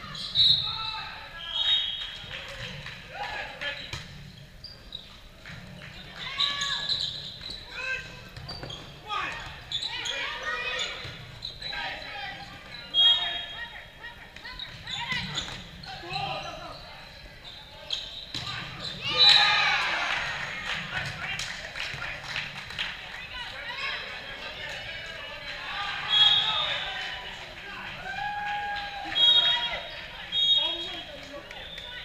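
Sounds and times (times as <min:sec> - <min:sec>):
players calling and shouting: 0:00.0 - 0:32.0.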